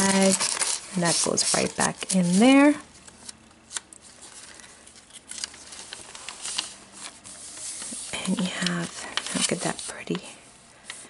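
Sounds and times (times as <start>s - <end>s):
paper pages rustling: 0.0s - 11.0s.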